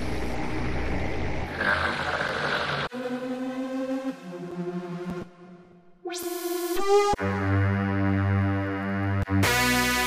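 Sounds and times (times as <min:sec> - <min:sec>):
synthesizer airplane rumble: 0:00.0 - 0:01.6.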